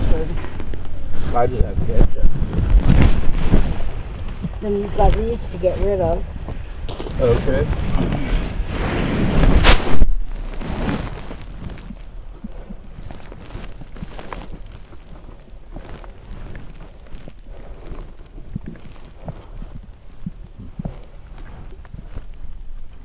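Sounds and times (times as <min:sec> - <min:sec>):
rustling handling noise: 0:00.0 - 0:23.0.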